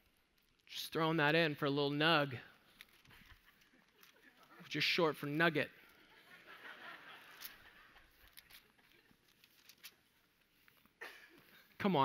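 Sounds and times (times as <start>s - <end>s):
congregation chuckling: 3.0s - 4.7s, 6.0s - 9.2s.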